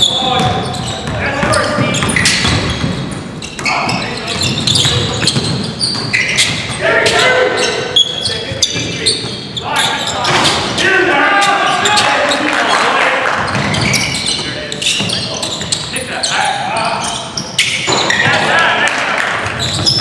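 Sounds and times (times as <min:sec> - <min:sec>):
players calling out: 0:00.0 - 0:20.0
basketball bouncing on wooden floor: 0:00.4 - 0:07.2.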